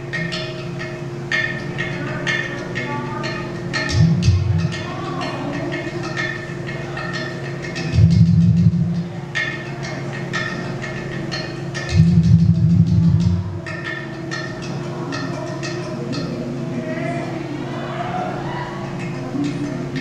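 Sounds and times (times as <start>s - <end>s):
deep low drum tones: 3.8s - 6.5s, 7.7s - 9.6s, 11.2s - 14.2s.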